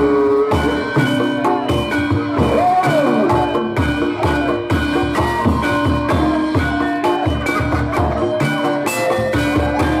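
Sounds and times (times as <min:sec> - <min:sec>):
drum beating: 0:00.0 - 0:10.0
held melodic notes: 0:00.0 - 0:10.0.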